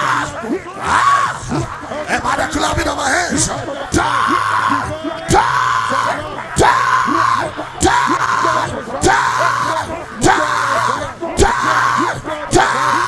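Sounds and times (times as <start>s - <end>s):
man shouting a prayer cry: 0.0s - 13.0s.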